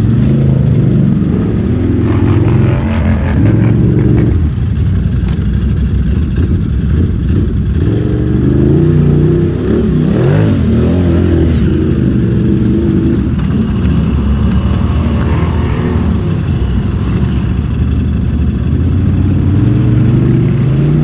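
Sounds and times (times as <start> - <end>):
atv engines revving: 0.0 - 21.0.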